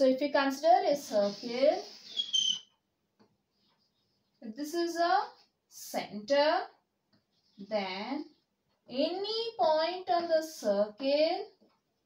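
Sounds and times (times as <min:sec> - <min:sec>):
chalk squeaking on a blackboard: 0:00.9 - 0:02.8.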